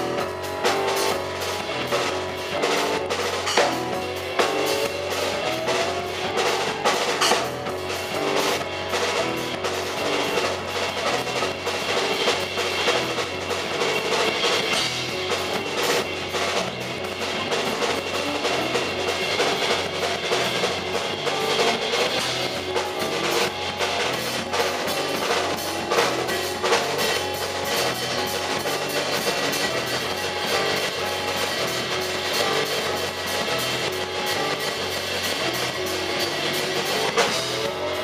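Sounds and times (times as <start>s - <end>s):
double bass notes: 0.0s - 38.0s
drum kit steady beat: 0.0s - 38.0s
keyboard: 0.0s - 38.0s.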